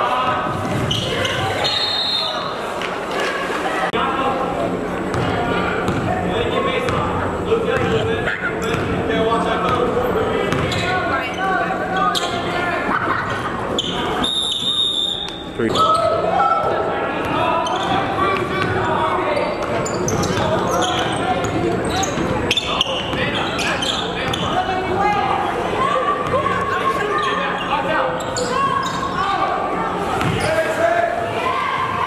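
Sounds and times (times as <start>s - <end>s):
crowd voices: 0.0s - 32.0s.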